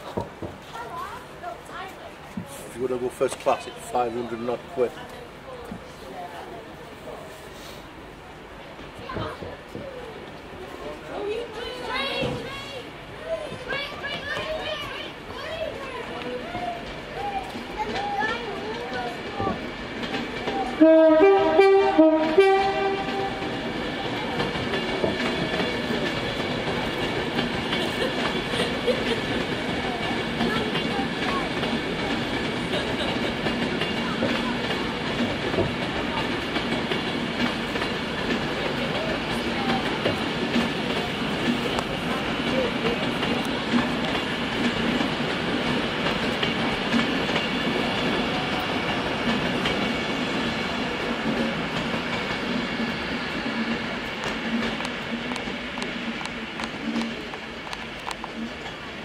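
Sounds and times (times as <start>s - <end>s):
train running on rails: 0.0s - 59.0s
two-tone train horn: 20.7s - 23.6s.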